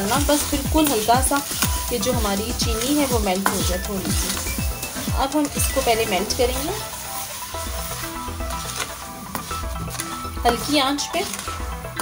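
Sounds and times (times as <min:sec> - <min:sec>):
background music: 0:00.0 - 0:12.0
sugar sizzling and bubbling in pan: 0:00.0 - 0:12.0.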